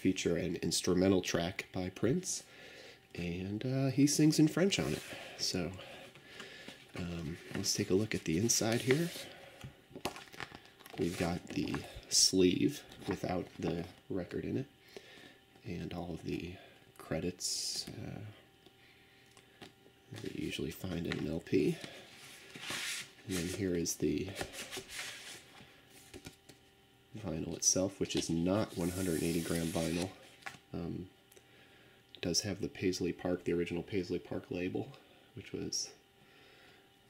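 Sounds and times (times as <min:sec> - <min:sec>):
paper rustling: 0:06.5 - 0:09.4, 0:10.0 - 0:12.0, 0:21.8 - 0:23.7, 0:28.2 - 0:30.6.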